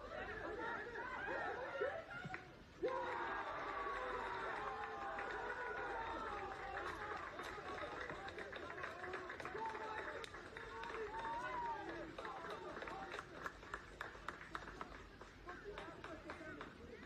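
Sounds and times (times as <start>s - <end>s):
players shouting and cheering: 0.0s - 13.3s.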